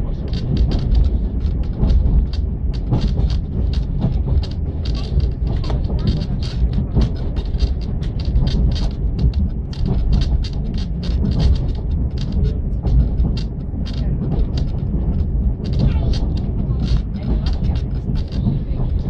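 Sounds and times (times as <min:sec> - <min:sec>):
train coach rumbling on track: 0:00.0 - 0:19.0.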